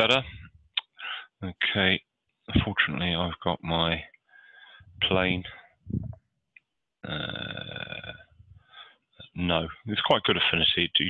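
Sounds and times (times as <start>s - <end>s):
man saying uh: 0.0s - 0.4s, 5.0s - 5.6s, 7.0s - 8.2s.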